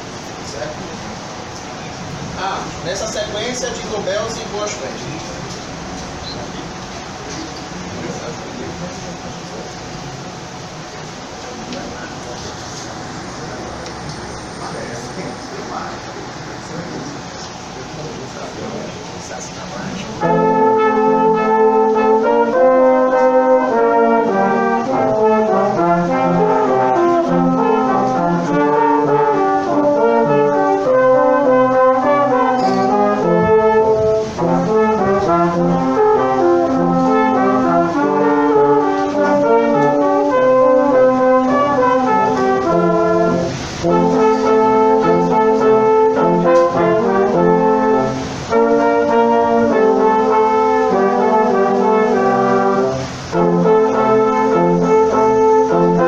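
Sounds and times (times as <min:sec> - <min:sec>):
brass quintet playing: 0:00.0 - 0:56.0.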